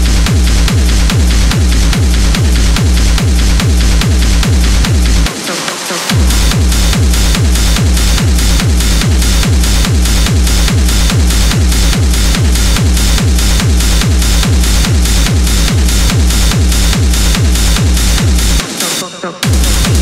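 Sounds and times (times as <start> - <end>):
hissing hi-hats and noise: 0.0 - 20.0
techno kick drum: 0.0 - 20.0.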